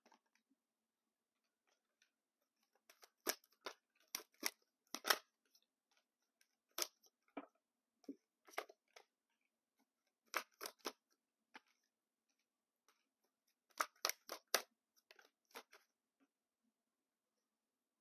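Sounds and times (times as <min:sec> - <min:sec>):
cards snapping while shuffled: 0:02.8 - 0:05.3, 0:06.7 - 0:07.1, 0:10.2 - 0:11.0, 0:13.7 - 0:15.8.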